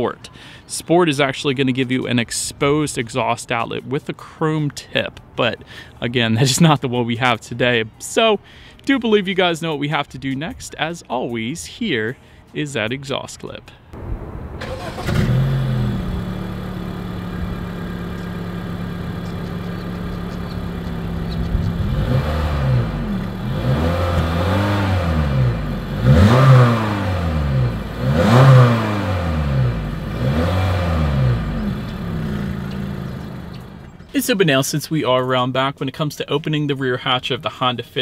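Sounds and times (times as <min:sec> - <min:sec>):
car engine revving: 0:14.0 - 0:34.0
car engine idling: 0:14.0 - 0:34.1.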